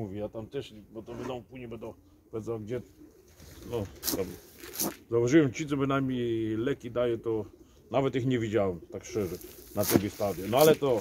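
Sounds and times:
pigeons cooing: 0:00.8 - 0:11.0
spoon scraping in grain bucket: 0:09.3 - 0:11.0.

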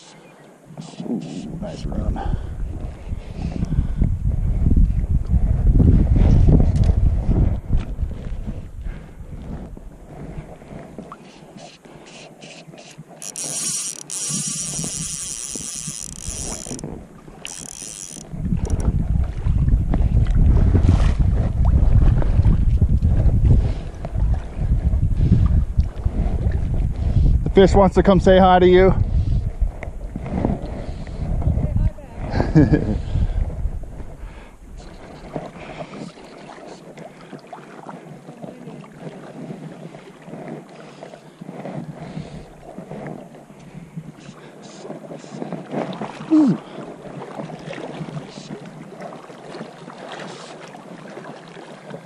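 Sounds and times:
wind buffeting microphone: 0:00.8 - 0:11.2, 0:13.2 - 0:48.9
river water flowing: 0:11.0 - 0:18.8, 0:46.0 - 0:52.0.

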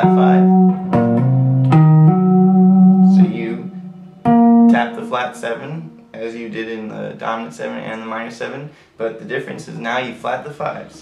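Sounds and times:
electric guitar note: 0:00.0 - 0:06.2.

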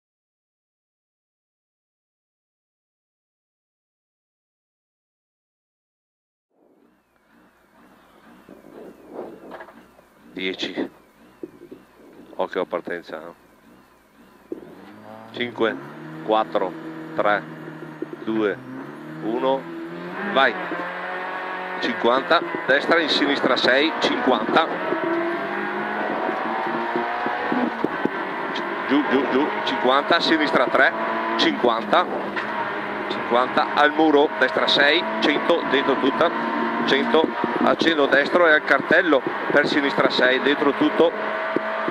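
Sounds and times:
rally car engine running: 0:06.6 - 0:41.9.

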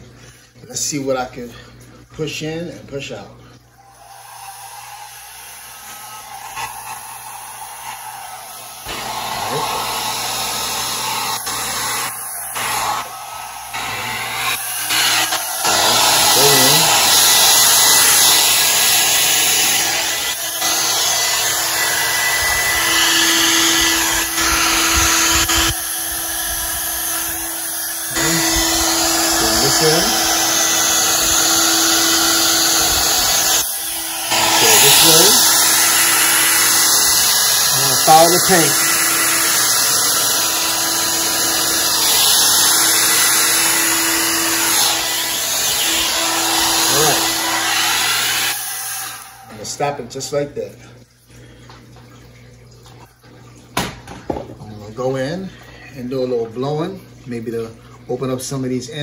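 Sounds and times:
hair dryer blowing air: 0:03.8 - 0:50.3.

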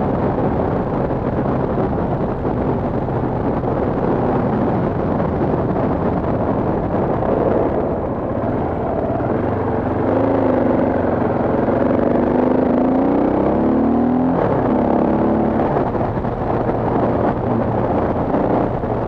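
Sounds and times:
motorcycle engine accelerating: 0:00.0 - 0:19.0
wind rushing over microphone: 0:00.0 - 0:19.0.

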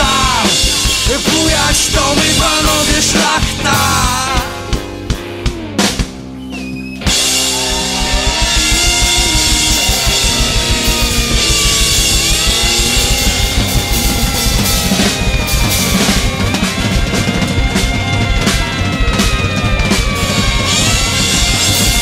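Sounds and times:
instrumental rock music: 0:00.0 - 0:22.0.

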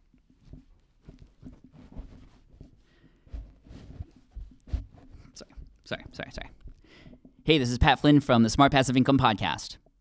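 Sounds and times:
fabric rustling: 0:00.0 - 0:06.9
dull low thumps: 0:00.0 - 0:07.4.

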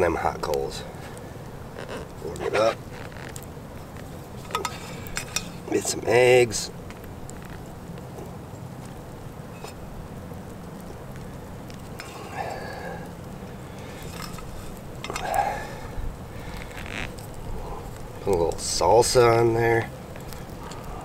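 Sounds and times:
steady low hiss: 0:00.0 - 0:21.0.

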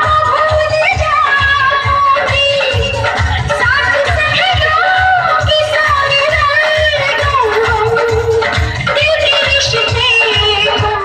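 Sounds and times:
loud amplified song music: 0:00.0 - 0:11.0
steady drum beat: 0:00.0 - 0:11.0.

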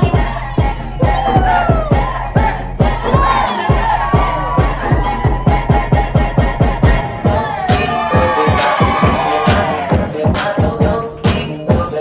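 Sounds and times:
dance music with fast kick drum: 0:00.0 - 0:12.0
crowd cheering and shouting: 0:01.0 - 0:06.2, 0:07.0 - 0:10.2.

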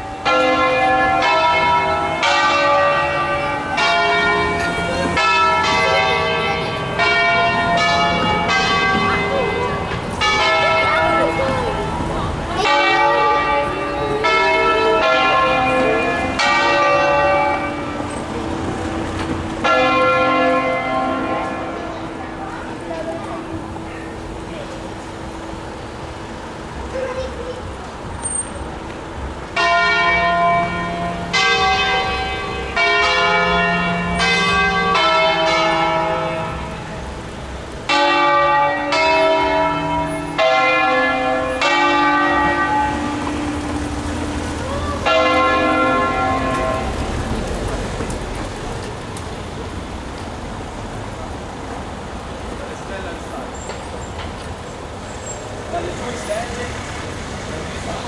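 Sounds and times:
church bells ringing: 0:00.0 - 0:27.4, 0:28.8 - 0:50.2
traffic hum: 0:00.0 - 0:58.0.

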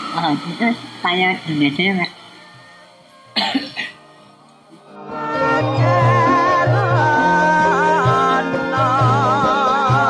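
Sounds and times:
elderly woman coughing: 0:03.4 - 0:04.0.

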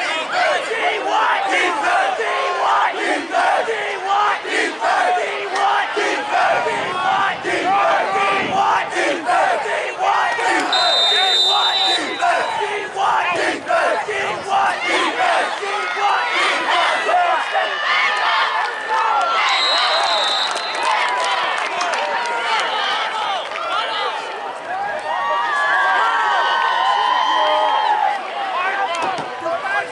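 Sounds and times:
crowd shouting and yelling: 0:00.0 - 0:29.9.

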